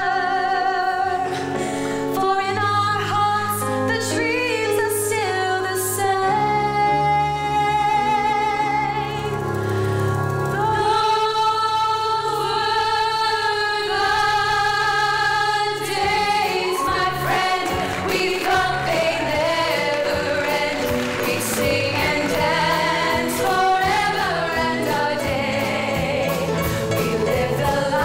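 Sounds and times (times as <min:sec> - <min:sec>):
women singing in harmony: 0:00.0 - 0:09.4, 0:10.5 - 0:28.0
live pop band: 0:15.6 - 0:28.0.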